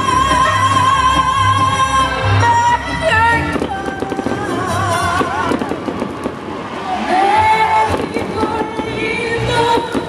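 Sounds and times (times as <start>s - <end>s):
ranchera band playing: 0.0s - 10.0s.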